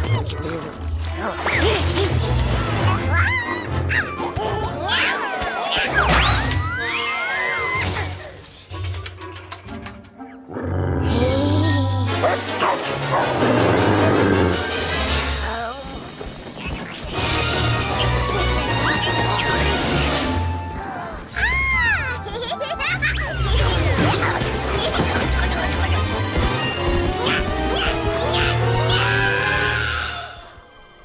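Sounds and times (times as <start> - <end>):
cartoon background music: 0.0 - 31.0
dog barking and yipping: 12.2 - 13.4.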